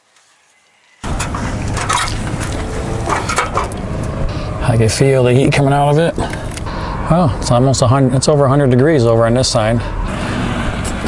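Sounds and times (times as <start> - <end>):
knocks and crunching: 1.0 - 4.2.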